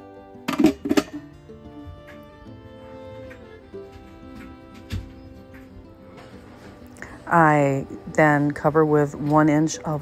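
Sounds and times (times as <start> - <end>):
background music sustained notes: 0.0 - 10.0.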